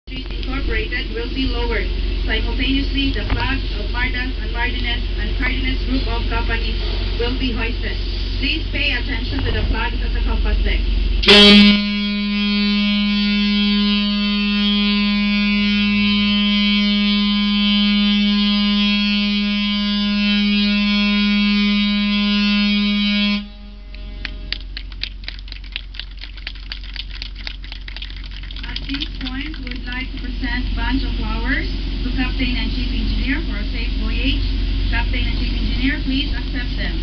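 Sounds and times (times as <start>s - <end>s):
ship's horn blast: 0.1s - 24.9s, 28.7s - 37.0s
hand clapping: 23.9s - 30.2s.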